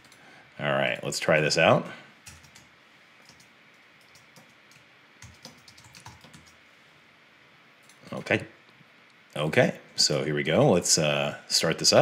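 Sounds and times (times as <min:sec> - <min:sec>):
faint keyboard typing: 0:00.0 - 0:00.2, 0:02.2 - 0:06.6.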